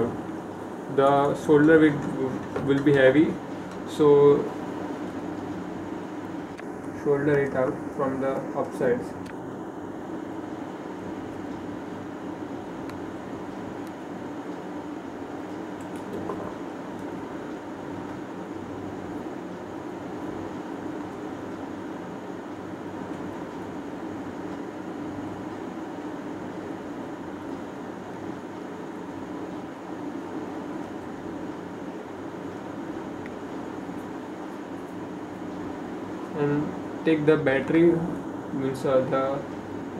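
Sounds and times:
background hum with hiss: 0.0 - 39.9.

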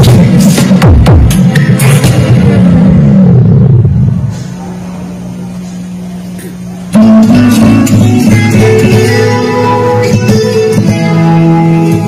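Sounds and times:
loud bass from loudspeakers: 0.0 - 12.0.

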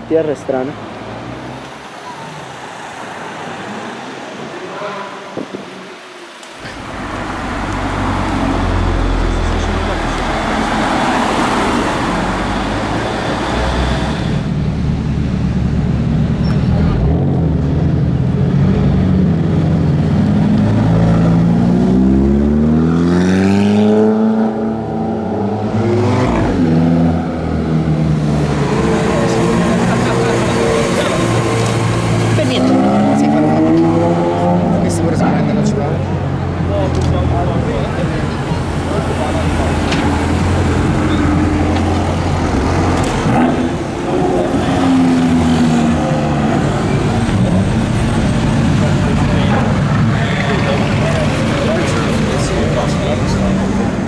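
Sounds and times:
traffic noise: 0.0 - 54.0
sports car engines accelerating: 6.4 - 54.0.

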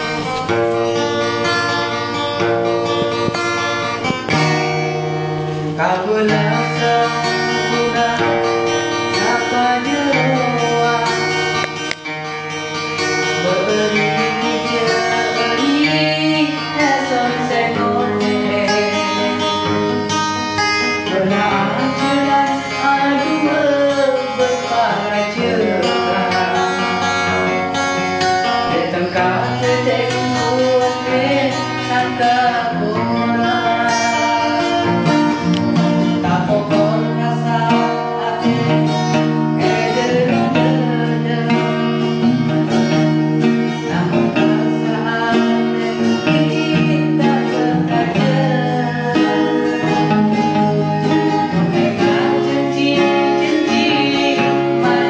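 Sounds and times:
plucked guitar: 0.0 - 55.0.

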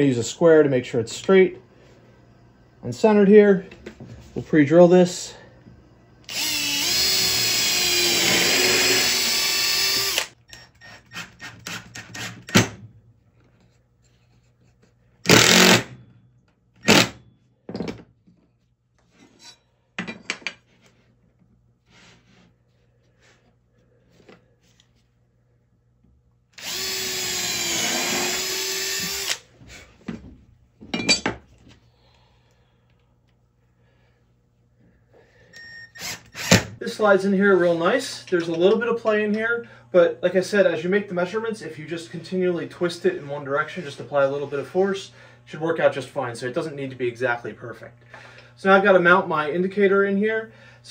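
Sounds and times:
power drill boring into wood: 6.2 - 12.6, 15.3 - 15.9, 16.8 - 17.2, 26.6 - 29.5, 36.0 - 36.8.

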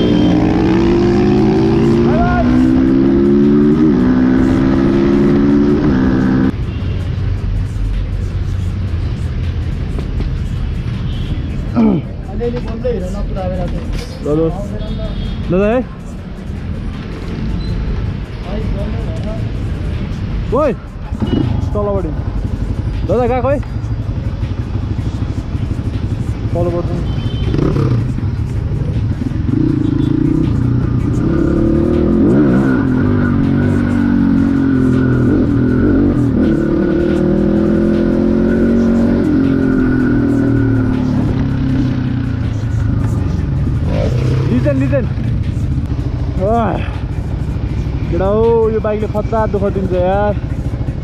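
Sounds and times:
voices: 0.0 - 3.5, 18.2 - 51.0
motorcycle engine revving: 0.0 - 6.6, 24.1 - 51.0.

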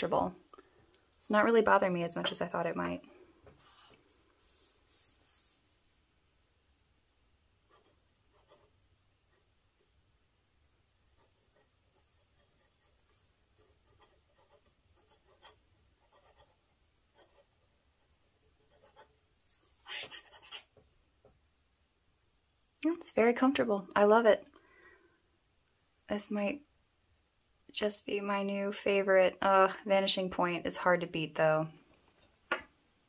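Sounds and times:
fountain pen scratching on paper: 7.7 - 8.7, 11.1 - 17.5, 18.6 - 19.1, 19.8 - 20.7.

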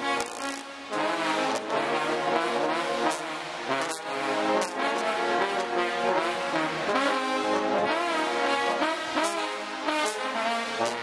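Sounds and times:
trombones playing in unison: 0.0 - 11.0.

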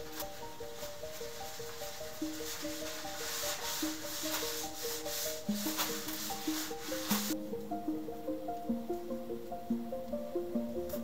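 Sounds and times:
cloth rubbing on leather: 0.0 - 7.4
background music with simple melody: 0.0 - 11.0.

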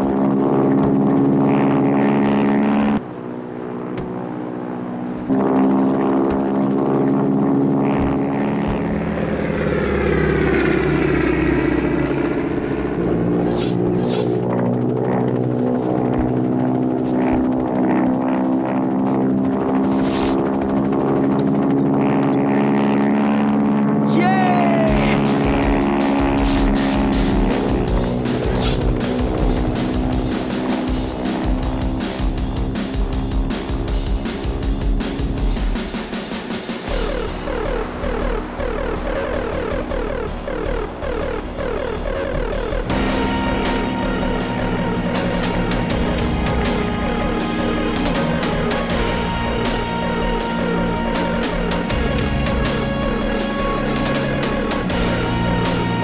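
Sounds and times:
propeller plane drone: 0.0 - 56.0
falling pitch sweep: 5.2 - 21.1, 36.9 - 56.0
film background music: 7.8 - 23.2, 24.1 - 56.0
steady rhythmic beat: 24.2 - 56.0.

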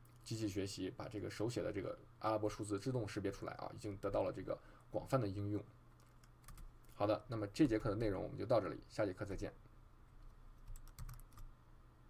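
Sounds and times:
faint electrical hum: 0.0 - 12.0
computer keys clicking: 5.9 - 7.0, 10.2 - 11.5.

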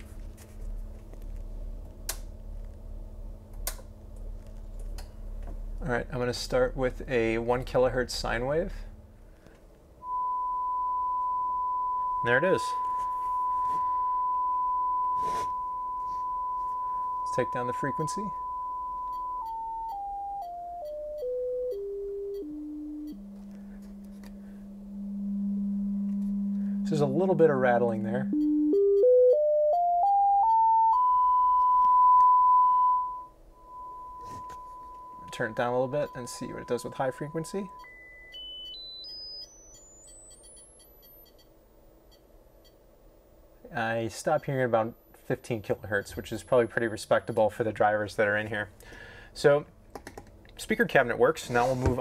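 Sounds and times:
sine test tone stepping down: 10.0 - 48.6.

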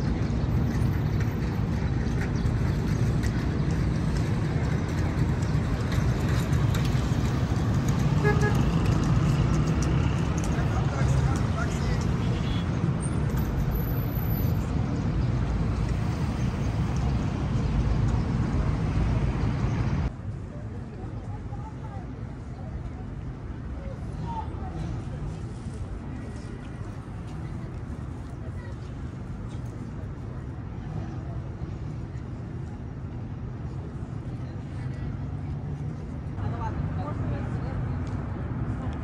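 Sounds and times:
cars driving past: 0.0 - 20.1
car horn toot: 8.2 - 8.6.

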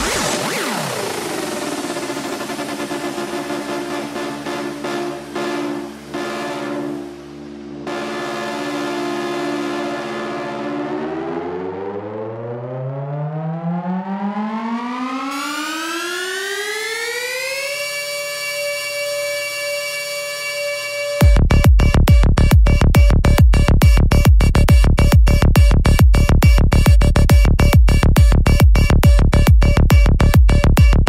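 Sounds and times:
sustained synthesizer chord: 0.0 - 19.7
rising synth sweep: 0.0 - 22.8.

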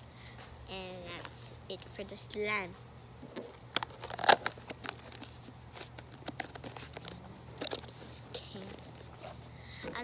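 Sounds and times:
plastic clicks and crinkles: 3.2 - 9.0.

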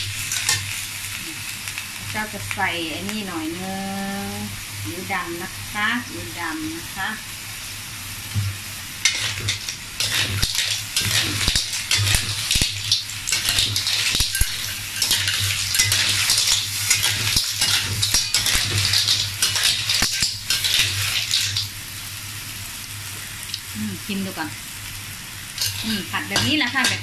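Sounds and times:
pan sizzling: 0.0 - 27.0.

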